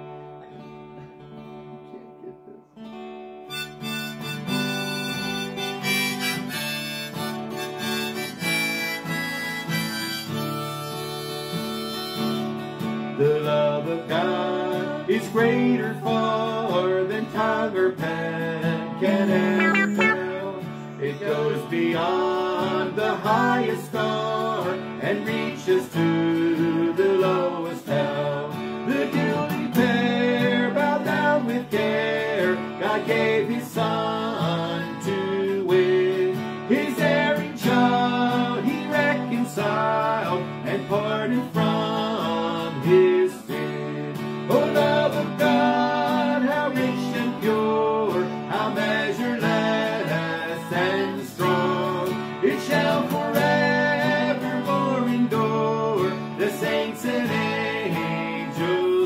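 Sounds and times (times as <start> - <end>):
strummed acoustic guitar: 0.0 - 59.0
harmonica melody: 3.4 - 12.8, 19.0 - 21.2
woman singing a hymn: 19.1 - 20.2.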